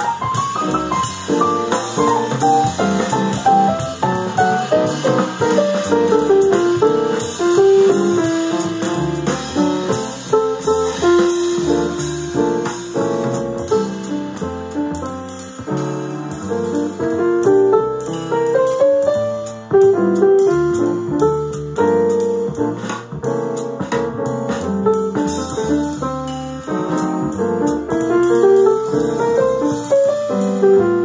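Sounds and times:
bass and drums backing track: 0.0s - 31.0s
jazz piano improvising: 0.0s - 31.0s.

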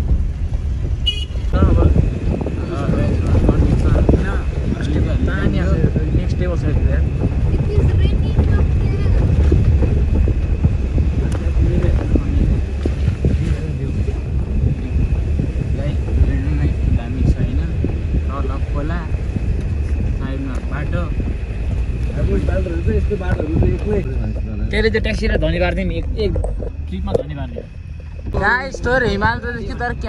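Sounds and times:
road and engine rumble: 0.0s - 30.0s
wind buffeting microphone: 0.0s - 30.0s.

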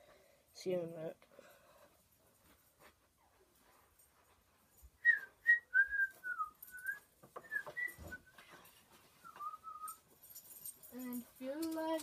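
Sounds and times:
person whistling: 5.0s - 8.4s, 9.2s - 10.0s.

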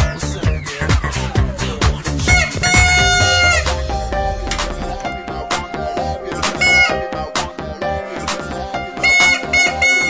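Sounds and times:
dance music with steady beat: 0.0s - 8.7s.

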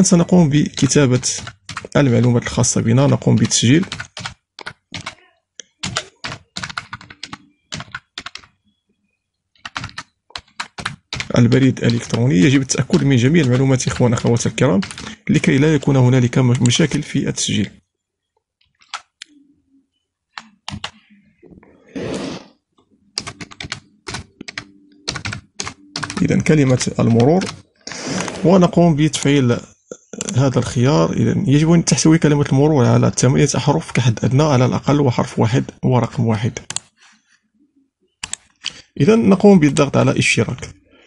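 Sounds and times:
typing on computer keyboard: 0.7s - 8.6s, 9.6s - 15.2s, 18.6s - 19.3s, 20.4s - 21.0s, 23.2s - 27.6s, 38.2s - 38.8s
keyboard keystroke clicks: 38.2s - 38.5s.

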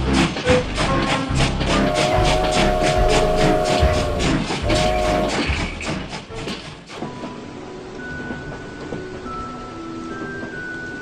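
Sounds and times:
steam locomotive chuffing: 0.0s - 7.6s
music: 0.0s - 11.0s
steam whistle: 1.7s - 5.7s.

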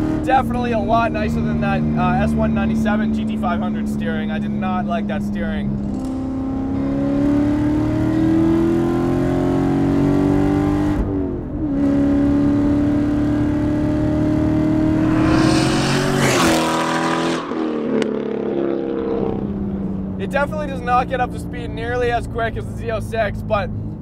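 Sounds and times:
car engine accelerating: 5.6s - 21.6s.

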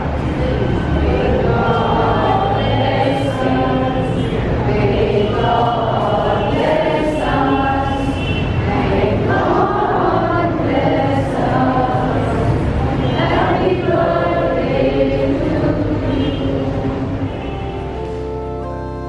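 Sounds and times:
group singing a hymn: 0.0s - 17.8s.

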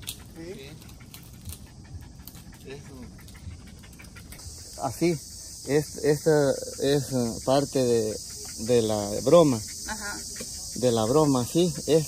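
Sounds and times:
small dog panting: 0.0s - 5.1s, 6.2s - 12.0s
high insect buzz: 0.0s - 12.0s.

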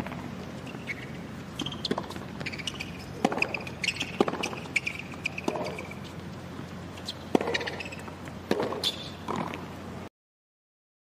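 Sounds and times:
tennis shoes squeaking on court: 0.0s - 9.6s
tennis ball hit by racket: 1.6s - 6.1s, 7.0s - 9.6s.

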